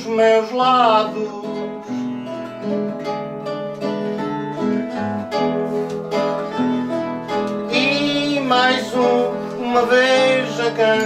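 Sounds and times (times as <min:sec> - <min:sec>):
man singing: 0:00.0 - 0:02.1, 0:07.6 - 0:11.0
acoustic guitar: 0:00.0 - 0:11.0
plucked string instrument: 0:00.0 - 0:11.0.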